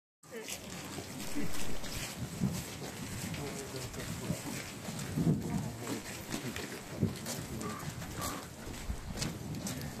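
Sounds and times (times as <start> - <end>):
footsteps on paved road: 0.2 - 10.0
low voices: 0.4 - 2.1.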